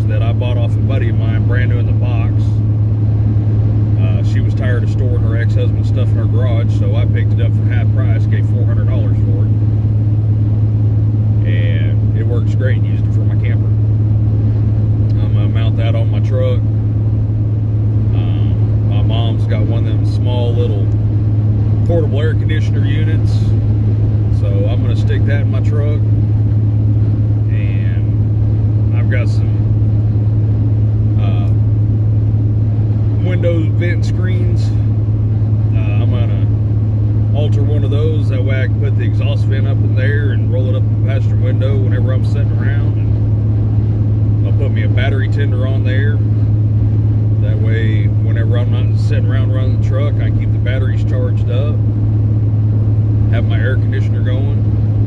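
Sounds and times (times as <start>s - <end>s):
man talking: 0.0s - 2.6s, 4.0s - 9.6s, 11.4s - 13.8s, 15.1s - 16.7s, 18.1s - 21.0s, 21.8s - 23.6s, 24.3s - 26.1s, 27.5s - 28.2s, 28.9s - 29.7s, 31.2s - 31.6s, 33.1s - 34.9s, 35.7s - 36.6s, 37.3s - 43.2s, 44.4s - 46.3s, 47.4s - 51.8s, 53.3s - 54.7s
road noise: 0.0s - 55.0s
truck engine drone: 0.0s - 55.0s.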